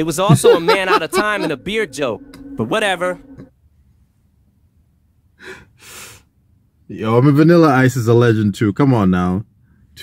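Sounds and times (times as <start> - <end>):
man laughing under his breath: 0.2 - 1.8.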